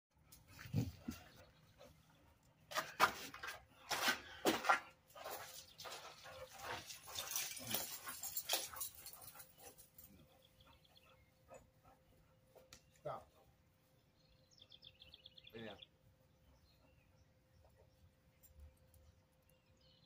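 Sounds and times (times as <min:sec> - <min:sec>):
sharp knocks and rustles: 0:02.7 - 0:10.0
dog panting: 0:05.2 - 0:13.9, 0:16.0 - 0:18.3.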